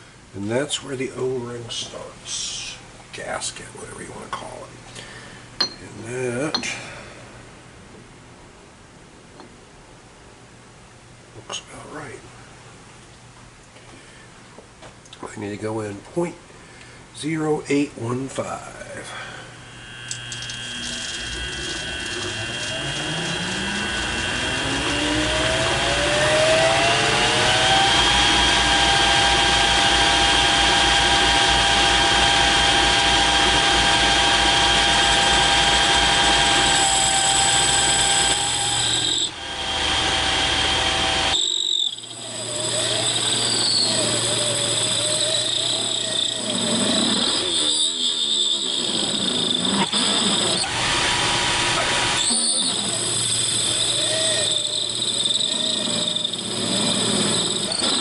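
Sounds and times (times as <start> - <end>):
metal lathe whine: 18.8 - 58.0
wavering whine of cutting tool: 18.8 - 58.0.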